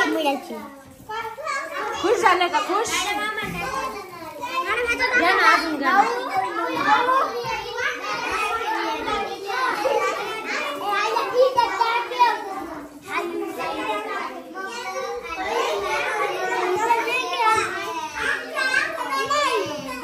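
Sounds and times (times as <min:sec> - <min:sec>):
children chattering and calling out: 0:00.0 - 0:20.0.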